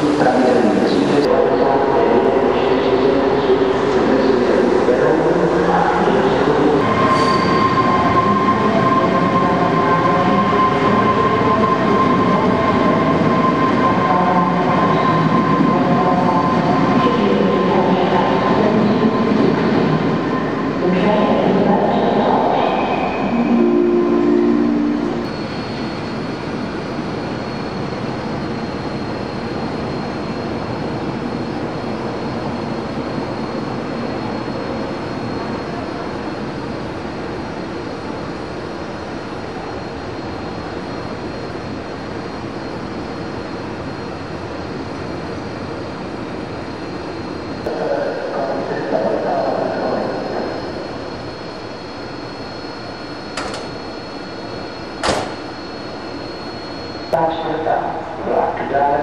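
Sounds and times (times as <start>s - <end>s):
electric train whine: 0.0s - 59.0s.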